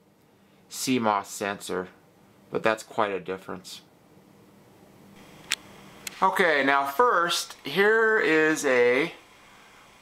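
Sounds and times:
faint steady hiss: 0.0s - 10.0s
sharp click: 5.4s - 6.2s.

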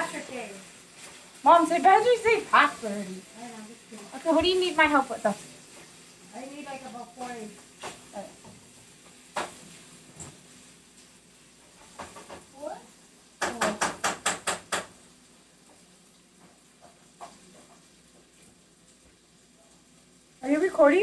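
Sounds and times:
food frying hiss: 0.0s - 21.0s.

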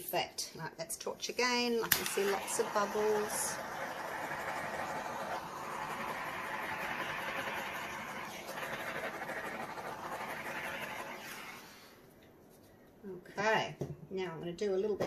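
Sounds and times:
torch flame hissing: 1.8s - 12.0s.

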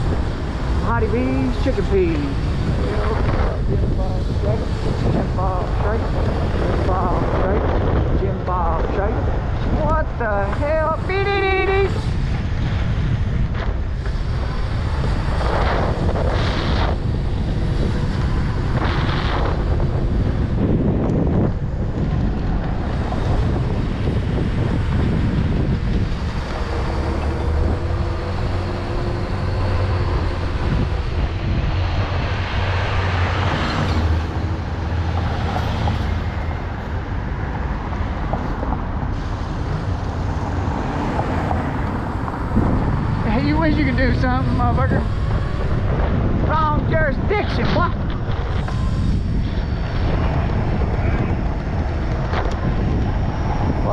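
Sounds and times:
road and city traffic: 0.0s - 53.9s
wind rushing over microphone: 0.0s - 53.9s.

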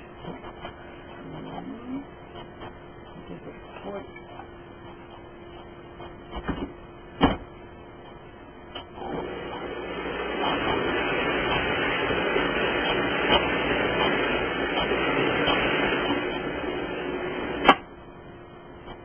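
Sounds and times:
blender motor running: 9.0s - 17.7s.

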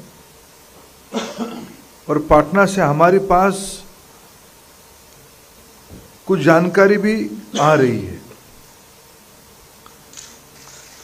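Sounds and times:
man coughing: 1.1s - 1.8s, 7.5s - 7.9s
man speaking: 2.1s - 3.9s, 6.3s - 8.4s.

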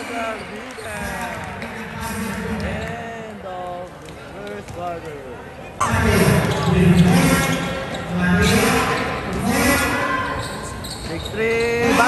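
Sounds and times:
loud voices in gymnasium: 0.0s - 12.0s.

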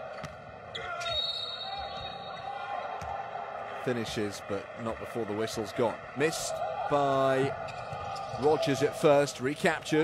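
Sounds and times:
referee's whistle blast: 0.8s - 2.5s.

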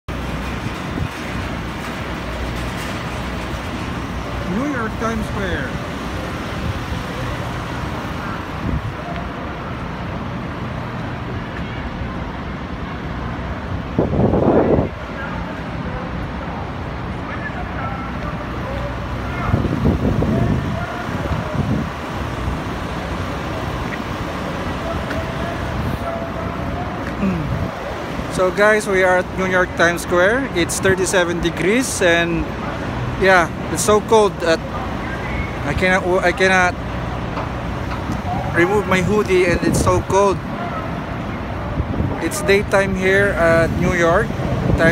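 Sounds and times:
city street traffic rumble: 0.0s - 44.9s
crowd voices: 14.4s - 44.9s.

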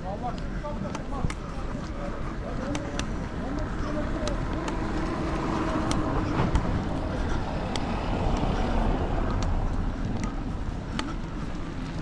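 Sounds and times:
car tyres rumbling on cobbles: 0.2s - 12.0s.

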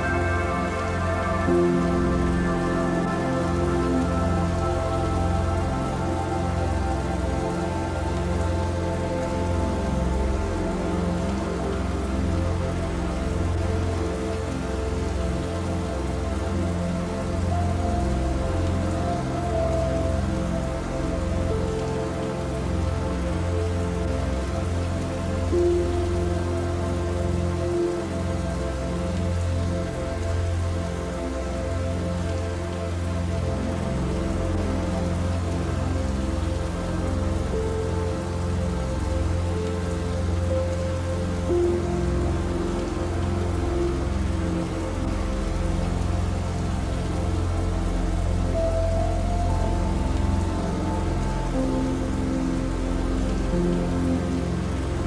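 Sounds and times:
soft slow music: 0.0s - 55.0s
steady rain falling: 0.0s - 55.0s.

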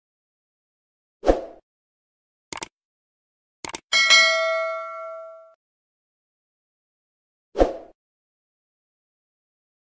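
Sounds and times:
click: 2.5s - 2.7s, 3.6s - 3.8s
bright bell ding: 3.9s - 5.6s.

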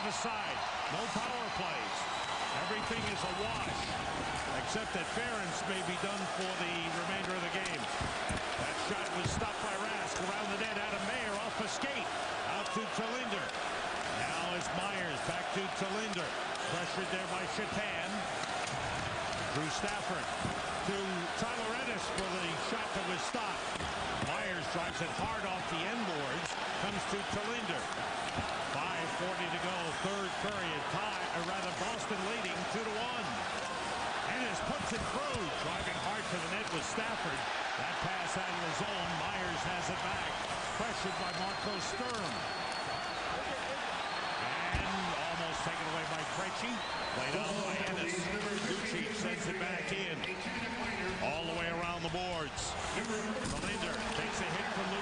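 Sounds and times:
arena crowd voices: 0.0s - 55.0s
hockey sticks and puck knocking: 5.9s - 11.5s.

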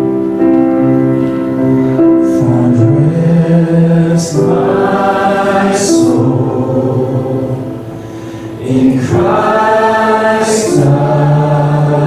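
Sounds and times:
piano: 0.0s - 12.0s.

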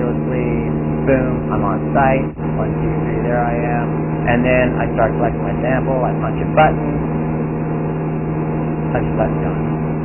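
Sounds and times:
propeller airplane engine drone: 0.0s - 10.0s.

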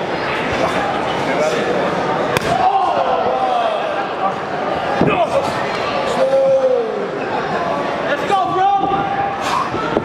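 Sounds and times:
crowd shouting and chatter: 0.0s - 10.0s.

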